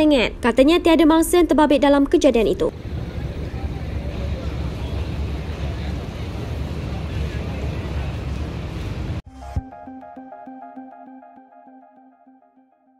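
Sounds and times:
constant noisy hiss: 0:02.7 - 0:09.2
heavy vehicle engines rumbling: 0:02.7 - 0:09.2
road traffic: 0:02.7 - 0:09.2.

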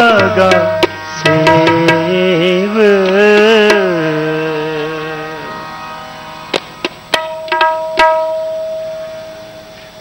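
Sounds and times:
held harmonium note: 0:00.0 - 0:10.0
tabla stroke: 0:00.0 - 0:10.0.

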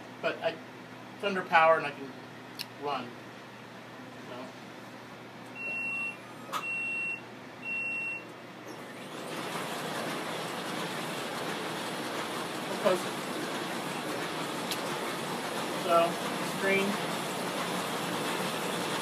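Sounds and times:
short warning beeps: 0:05.6 - 0:08.2
printing press running: 0:08.7 - 0:19.0.

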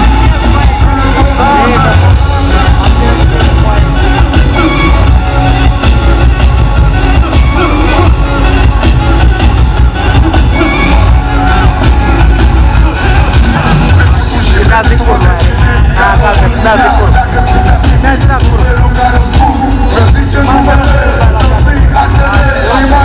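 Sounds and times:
crowd noise: 0:00.0 - 0:23.0
live hip-hop band music: 0:00.0 - 0:23.0.

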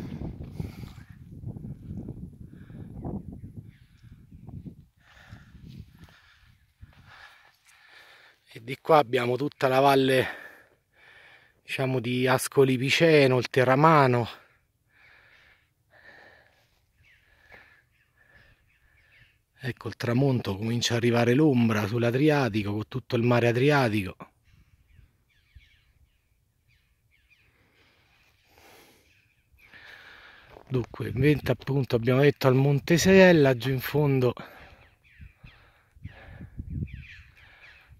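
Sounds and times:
wind buffeting microphone: 0:00.0 - 0:07.3, 0:35.0 - 0:37.9
short falling bird calls: 0:16.6 - 0:19.5, 0:34.5 - 0:37.9.

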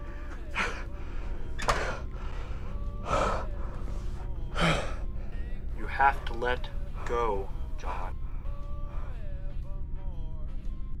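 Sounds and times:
man gasping: 0:04.5 - 0:05.4.

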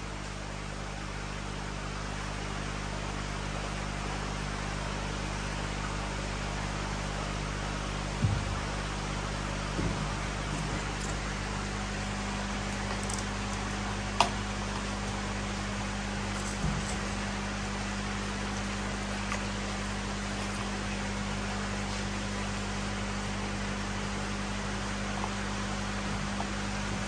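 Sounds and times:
low steady hum: 0:00.0 - 0:27.0.

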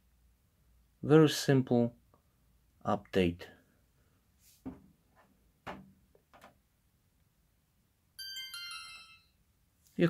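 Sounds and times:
two-tone electronic chime: 0:08.2 - 0:09.4.

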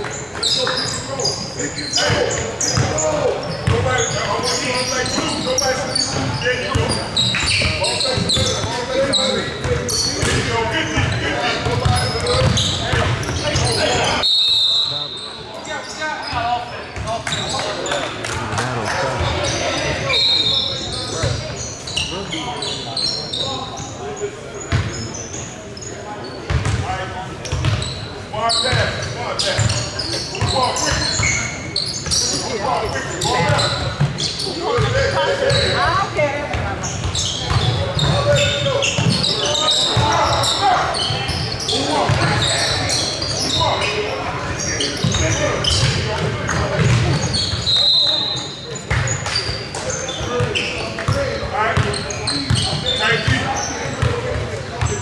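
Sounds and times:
voices of players and spectators: 0:00.0 - 0:55.0
basketball bouncing on wooden court: 0:02.1 - 0:04.1, 0:09.7 - 0:13.6, 0:26.5 - 0:26.8, 0:27.5 - 0:27.8, 0:36.5 - 0:39.2, 0:45.0 - 0:47.3.

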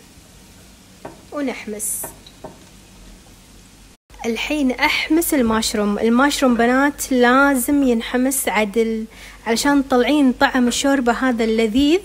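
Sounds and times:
mushrooms sizzling in oil: 0:00.0 - 0:04.0
utensil knocking against pot: 0:01.0 - 0:01.3, 0:02.0 - 0:02.7.

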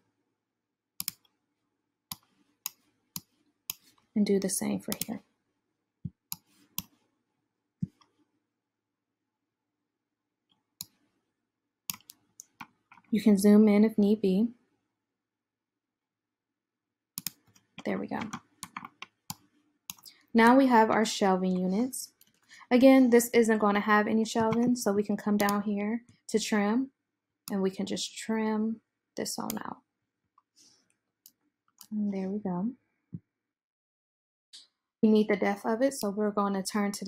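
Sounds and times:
computer mouse clicks: 0:01.0 - 0:01.3, 0:02.1 - 0:05.2, 0:06.1 - 0:07.0, 0:11.9 - 0:13.1, 0:17.2 - 0:20.2, 0:25.4 - 0:25.6.

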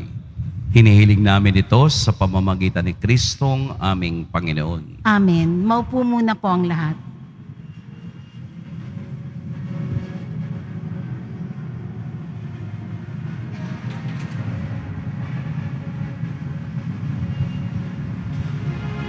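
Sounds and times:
congregation shuffling: 0:07.4 - 0:19.0.

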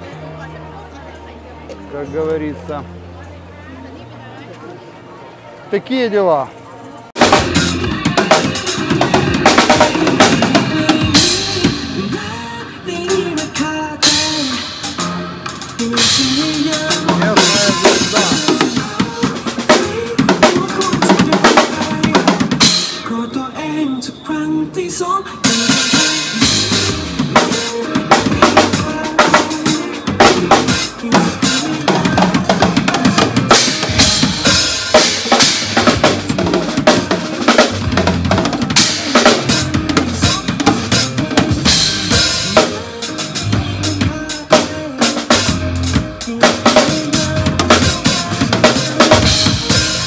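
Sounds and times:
fast drum kit playing: 0:07.2 - 0:23.2, 0:25.4 - 0:50.0
amplified backing music: 0:07.2 - 0:50.0.

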